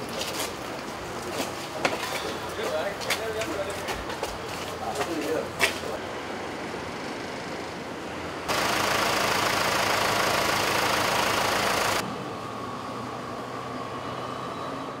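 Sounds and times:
vehicle engine humming: 6.0s - 14.6s.

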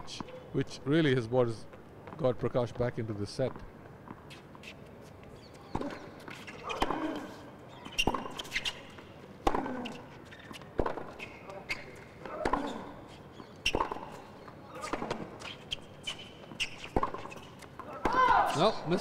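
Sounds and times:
rackets hitting tennis ball: 5.7s - 19.0s.

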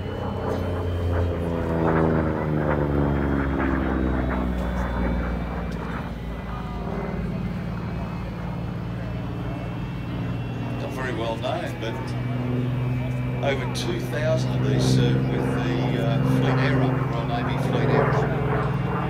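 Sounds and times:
propeller plane engine droning: 0.0s - 19.0s.

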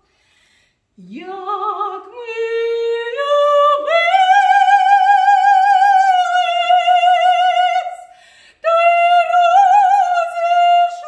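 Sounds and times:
woman singing soprano: 1.0s - 11.0s.

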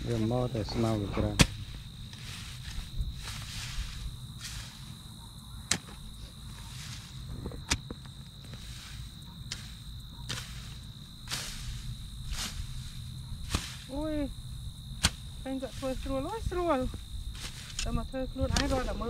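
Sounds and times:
dirt scraping swish: 0.0s - 19.0s
high-pitched insect drone: 0.0s - 19.0s
digging tool chopping soil: 1.1s - 4.8s, 5.7s - 6.1s, 6.7s - 14.1s, 15.0s - 15.4s, 17.4s - 19.0s.

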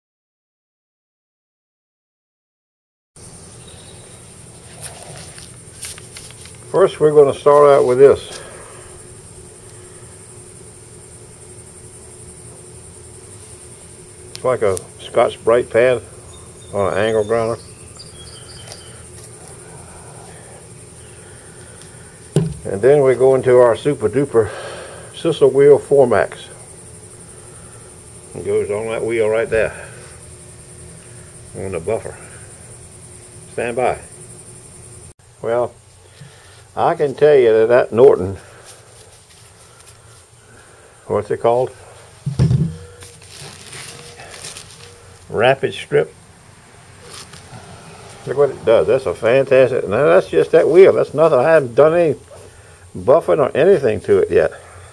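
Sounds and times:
insects chirping: 3.2s - 54.9s
thump: 22.4s - 22.7s, 42.2s - 42.9s
rustling and crinkling of drop cloth: 43.0s - 45.3s.

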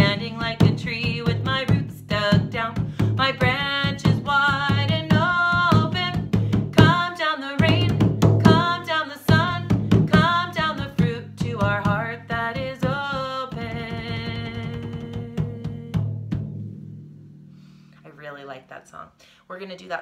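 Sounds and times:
woman singing: 0.0s - 16.1s
hand drum beating: 0.0s - 17.6s.

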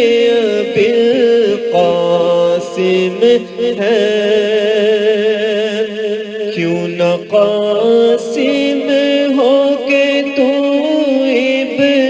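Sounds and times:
person singing devotional song: 0.0s - 12.0s.

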